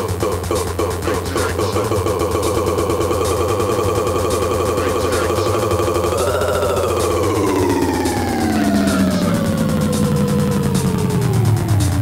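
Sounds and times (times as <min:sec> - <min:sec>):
electronic dance music: 0:00.0 - 0:12.0
siren-like synth note sliding: 0:02.0 - 0:12.0.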